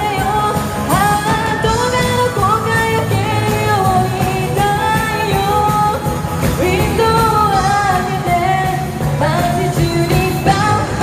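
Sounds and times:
live pop-rock band: 0.0 - 11.0.

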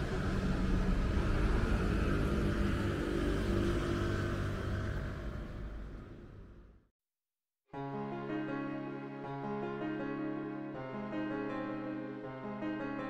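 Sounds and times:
low rumble of car traffic: 0.0 - 6.7.

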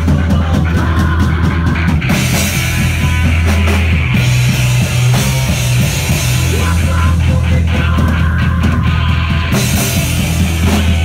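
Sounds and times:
punk rock band playing: 0.0 - 11.0.

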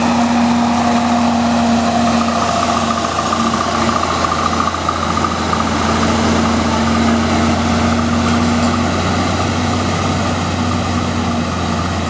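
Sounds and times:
truck engine running under load: 0.0 - 12.0.

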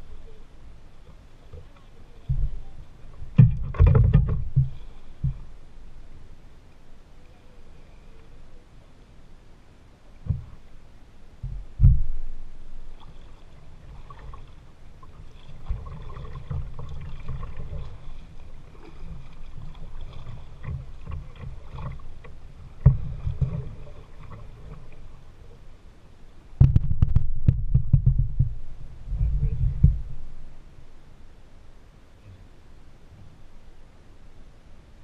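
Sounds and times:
water lapping against hull: 0.0 - 9.2, 10.0 - 31.4
knocks on hull: 3.3 - 5.4, 11.4 - 12.2, 22.8 - 23.7, 26.6 - 28.6
water splashing: 11.4 - 25.7.

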